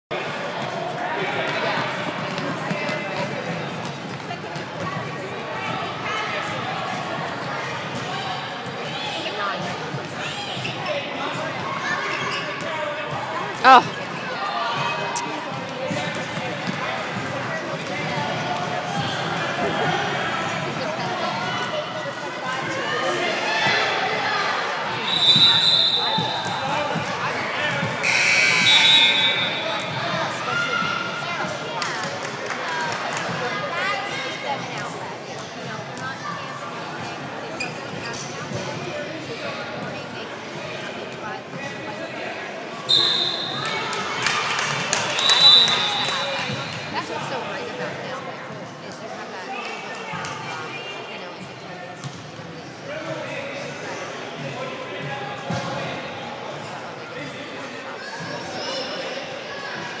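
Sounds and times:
voices echoing in gym: 0.1s - 60.0s
referee's whistle blasts: 25.0s - 26.6s, 28.0s - 29.9s, 42.9s - 43.7s, 45.2s - 46.5s.

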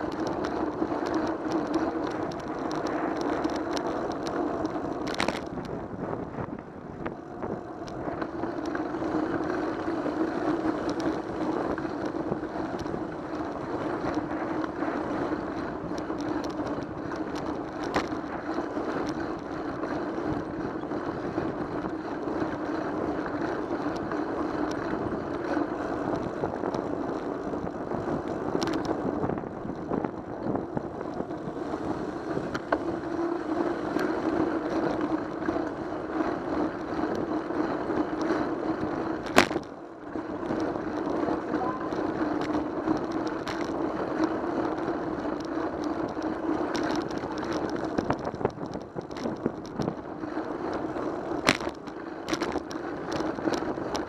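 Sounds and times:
road and wind noise: 0.0s - 54.0s.

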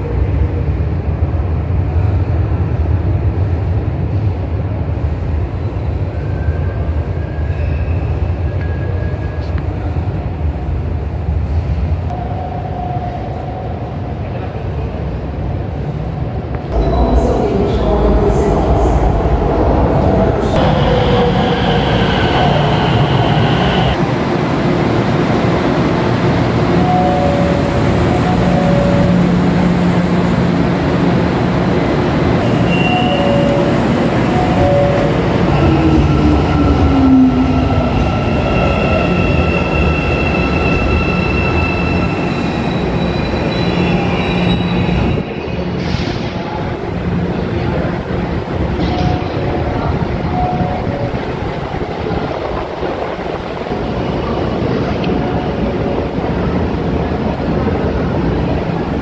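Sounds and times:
metro train motors whining: 16.7s - 59.0s.

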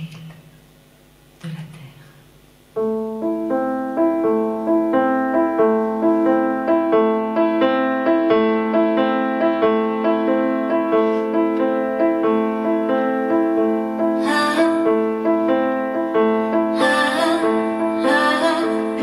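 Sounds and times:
grand piano playing: 2.7s - 19.0s.

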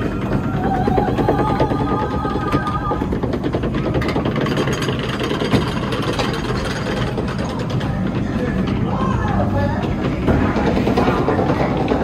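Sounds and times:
held soundtrack tones: 0.0s - 4.0s
ride machinery clattering: 0.0s - 12.0s.

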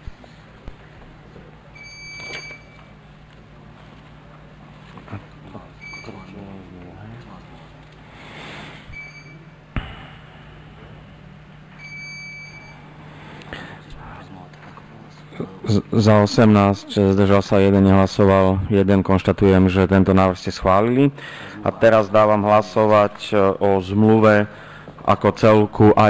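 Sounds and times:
low steady hum: 0.0s - 26.0s
short high electronic beeps: 1.8s - 2.9s.

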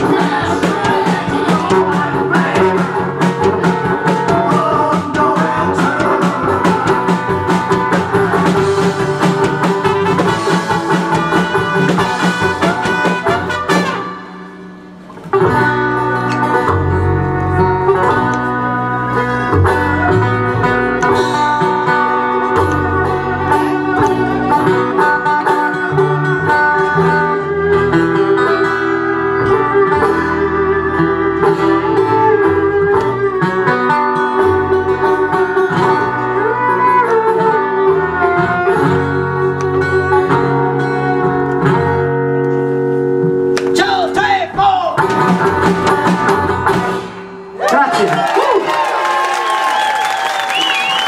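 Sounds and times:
acoustic band playing: 0.0s - 51.0s.

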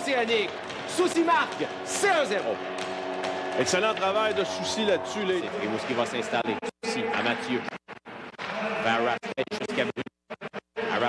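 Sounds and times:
commentator speaking: 3.6s - 7.8s.

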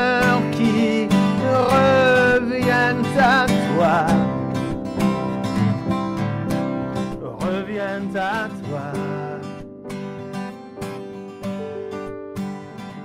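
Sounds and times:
man singing: 0.0s - 4.5s, 7.1s - 9.6s
acoustic guitars strumming: 0.0s - 13.0s.

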